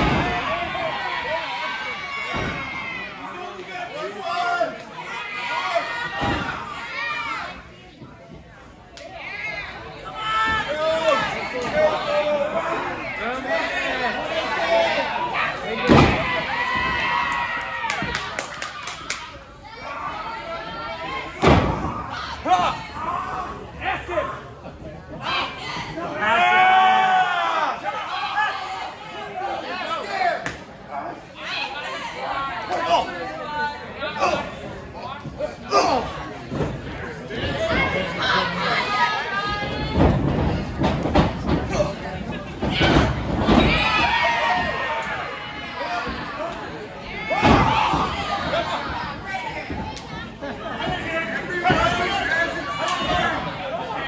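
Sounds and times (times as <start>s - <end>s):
shouts and chatter: 0.0s - 54.0s.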